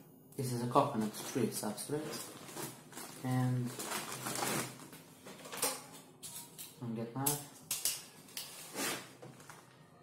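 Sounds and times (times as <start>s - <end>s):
plastic bag rustling: 0.8s - 6.0s, 8.4s - 9.7s.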